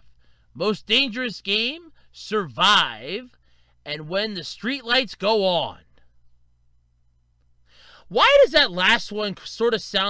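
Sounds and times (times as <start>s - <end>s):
steady low hum: 0.0s - 10.0s
person speaking: 0.6s - 6.0s.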